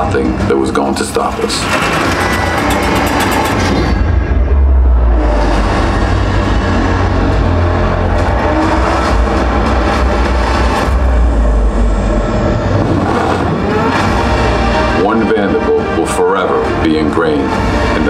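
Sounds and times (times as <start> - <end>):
cinematic film music: 0.0 - 18.0
deep low rumble: 1.1 - 15.0.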